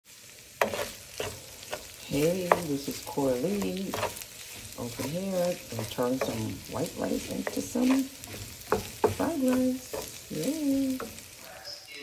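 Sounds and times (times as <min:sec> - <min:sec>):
rice sizzling in a pan: 0:00.0 - 0:12.0
wooden spatula scraping pan: 0:00.6 - 0:11.6.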